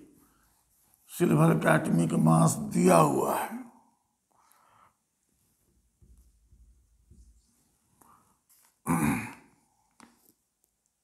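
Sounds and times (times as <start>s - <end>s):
man clearing his throat: 8.8s - 9.5s.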